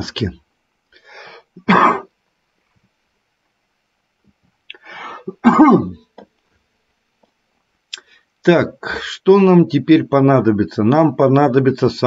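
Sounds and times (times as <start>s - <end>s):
man coughing: 1.6s - 2.1s, 5.3s - 6.0s
man clearing throat: 1.6s - 2.2s, 5.3s - 6.0s.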